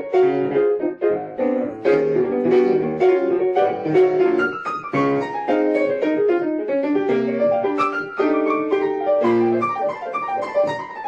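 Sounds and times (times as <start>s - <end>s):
lively piano playing: 0.0s - 11.0s.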